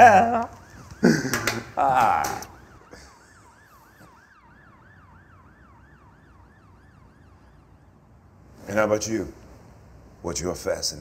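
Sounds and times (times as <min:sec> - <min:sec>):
faint siren yelping: 0:00.0 - 0:08.2.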